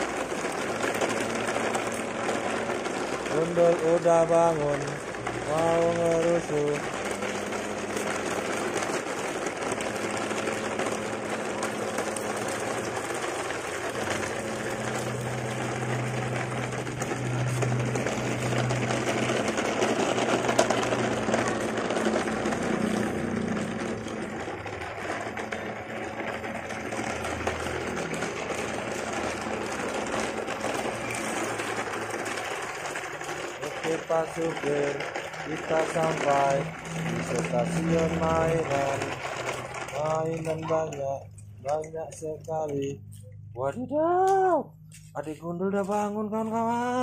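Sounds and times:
toy trucks rattling over gravel: 0:00.0 - 0:47.0.

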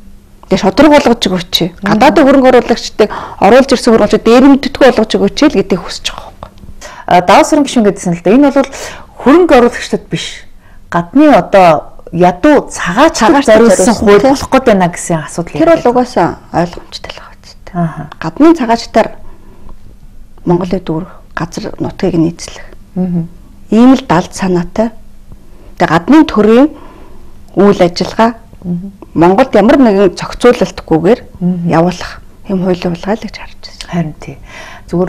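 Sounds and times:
woman talking: 0:00.4 - 0:19.2, 0:20.4 - 0:25.0, 0:25.8 - 0:26.8, 0:27.5 - 0:35.0
person talking: 0:13.0 - 0:14.7.

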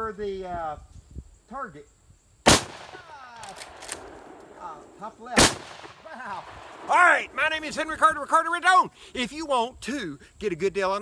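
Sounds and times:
man exclaiming: 0:03.0 - 0:03.6, 0:06.0 - 0:08.9
rifle lever action clicking: 0:03.4 - 0:04.1.

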